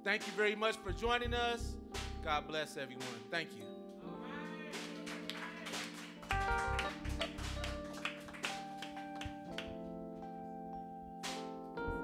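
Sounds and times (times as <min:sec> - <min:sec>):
held chord: 0:00.0 - 0:12.0
higher melody: 0:00.0 - 0:12.0
deep bass notes: 0:00.9 - 0:02.5, 0:06.3 - 0:07.8
live band soft music: 0:06.3 - 0:09.3.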